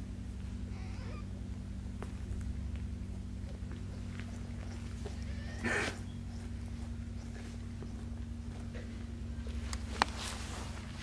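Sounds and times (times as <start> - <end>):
low hum: 0.0 - 11.0
kitten squeaking: 0.7 - 1.3, 4.7 - 6.4.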